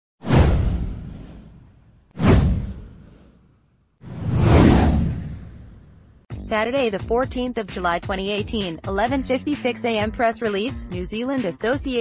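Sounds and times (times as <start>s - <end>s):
deep cinematic whoosh: 0.2s - 3.3s, 4.0s - 6.2s.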